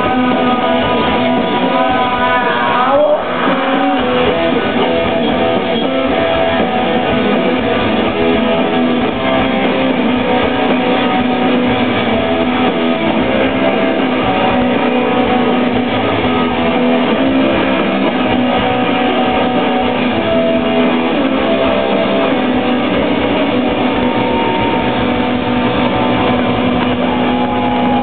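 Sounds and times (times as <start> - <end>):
drums: 0.0 - 28.0
electric guitars: 0.0 - 28.0.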